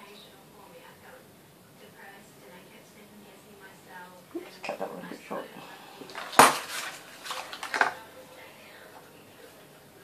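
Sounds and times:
scraping and rustling handling: 0:06.0 - 0:08.0.

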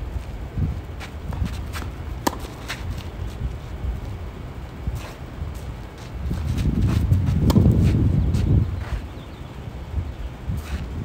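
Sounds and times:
shoes scuffing on clay court: 0:01.0 - 0:09.3, 0:10.5 - 0:11.0
racket hitting ball: 0:01.3 - 0:03.4, 0:06.6 - 0:08.1.

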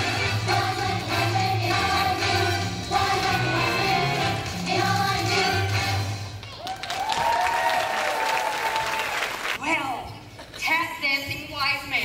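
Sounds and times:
audience applauding: 0:06.5 - 0:09.6.

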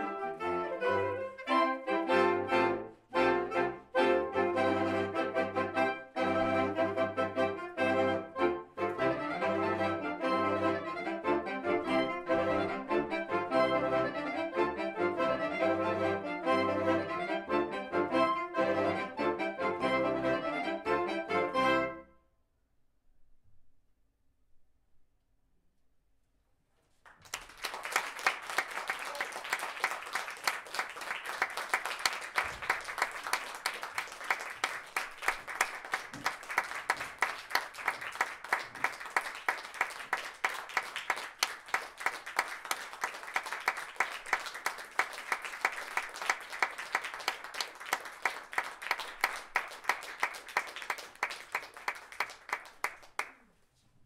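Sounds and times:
audience applauding: 0:27.0 - 0:53.5.

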